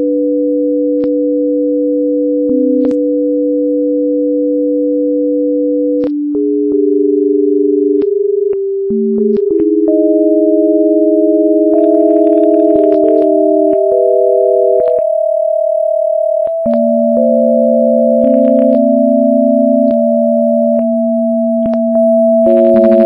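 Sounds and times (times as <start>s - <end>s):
electronic sine-wave tones: 0.0s - 23.0s
clicks at tone changes: 2.5s - 3.0s, 6.0s - 6.9s, 7.9s - 10.0s, 11.7s - 15.1s, 16.4s - 17.5s, 18.1s - 19.0s, 19.8s - 21.0s, 21.6s - 23.0s.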